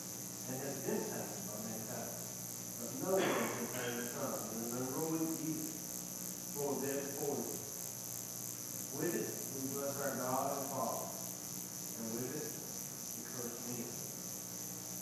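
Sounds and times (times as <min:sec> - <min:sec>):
high-pitched pulsing whine: 0:00.0 - 0:15.0.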